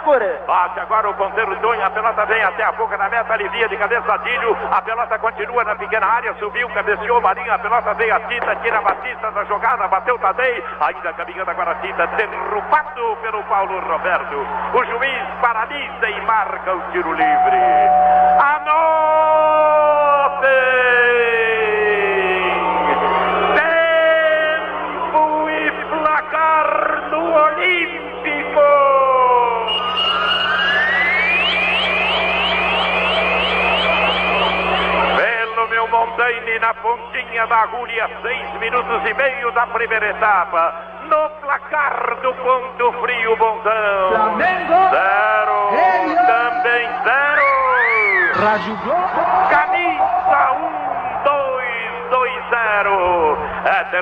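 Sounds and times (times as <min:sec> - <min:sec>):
man commentating: 0:00.0 - 0:29.8, 0:35.1 - 0:54.0
radio jingle: 0:00.7 - 0:18.9, 0:29.5 - 0:54.0
rising electronic sweeps: 0:29.5 - 0:35.6.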